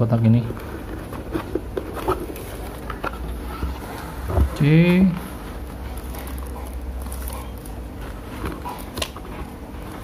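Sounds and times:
plastic wrapping rustling: 0.3s - 3.9s, 4.6s - 9.0s.

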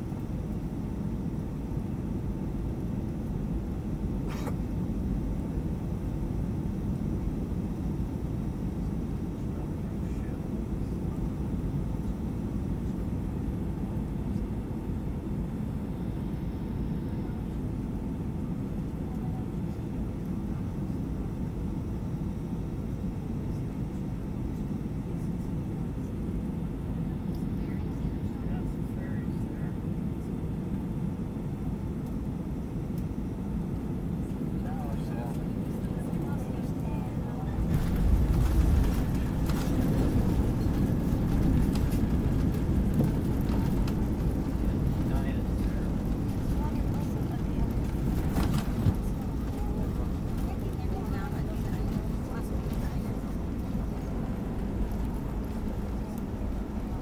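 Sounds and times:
airplane engines and airflow rumble: 0.0s - 57.0s
wheels rolling on runway: 37.6s - 55.9s.

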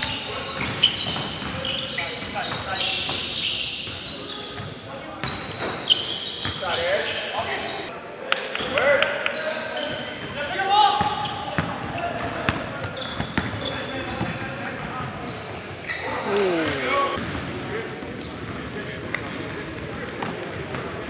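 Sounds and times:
sneaker squeaks: 0.0s - 7.9s, 8.5s - 17.2s
basketball bouncing on court: 11.0s - 14.4s
players calling out: 15.3s - 17.2s.

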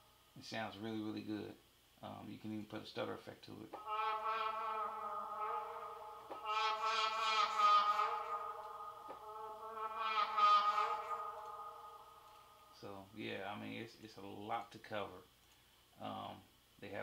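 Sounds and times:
synthetic vocal chord pad: 3.8s - 12.8s.

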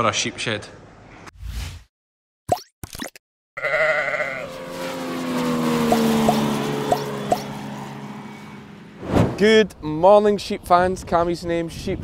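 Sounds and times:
sheep bleating: 3.6s - 4.6s
small rising blips: 5.8s - 7.5s, 8.4s - 9.5s.

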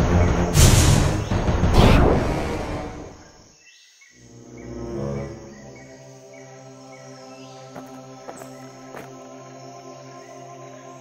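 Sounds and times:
insect-like chirps: 3.1s - 11.0s.

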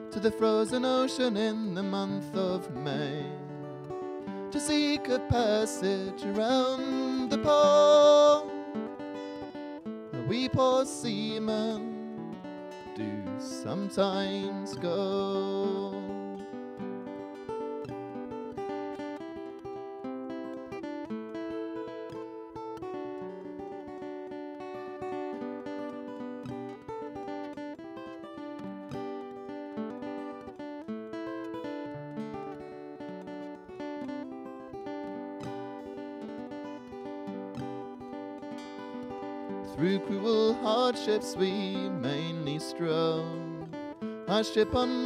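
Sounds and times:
solo acoustic guitar: 0.0s - 45.0s.

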